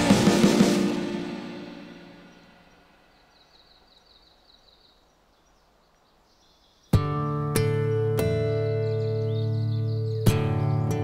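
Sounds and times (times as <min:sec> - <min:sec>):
rock band playing: 0:00.0 - 0:02.4.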